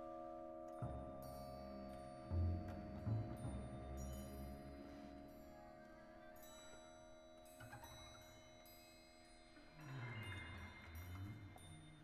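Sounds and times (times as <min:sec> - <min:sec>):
quiet chamber music: 0:00.0 - 0:12.0.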